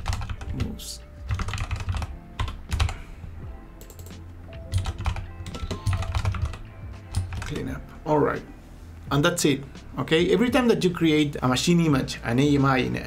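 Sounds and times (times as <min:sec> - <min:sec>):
computer keyboard typing: 0:00.0 - 0:03.0, 0:03.8 - 0:07.7.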